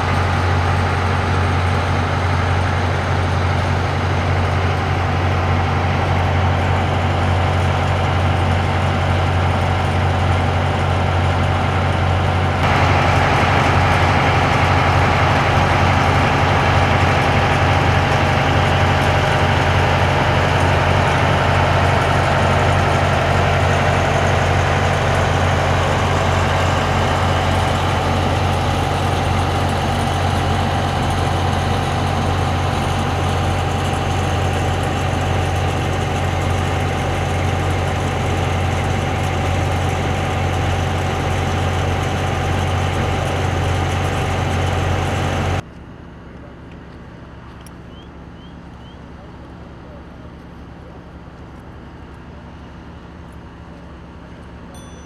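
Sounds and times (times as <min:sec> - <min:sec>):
fire truck engine humming: 0:00.0 - 0:55.0.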